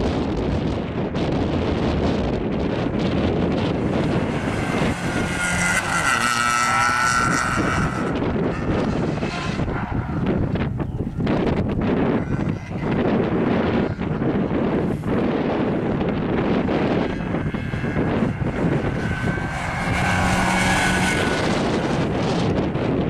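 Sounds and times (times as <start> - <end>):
rally car engine working hard: 0.0 - 23.0
wind buffeting on microphone: 0.0 - 23.0.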